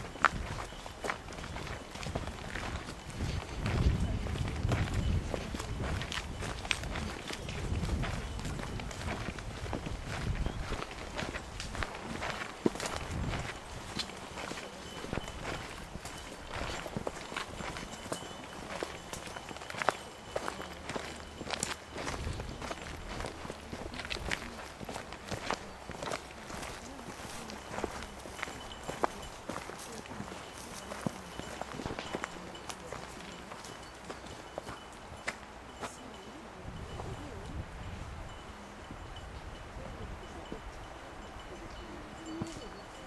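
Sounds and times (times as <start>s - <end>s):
footsteps on dirt and stones: 0.0s - 37.4s.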